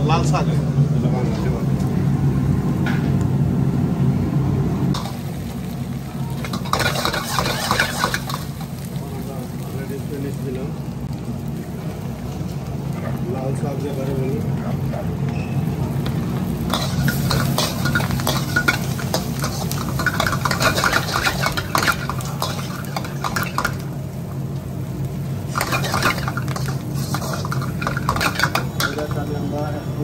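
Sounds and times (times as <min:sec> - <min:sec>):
metal ladle scraping a wok: 0:06.4 - 0:08.5, 0:16.7 - 0:23.8, 0:25.5 - 0:29.1.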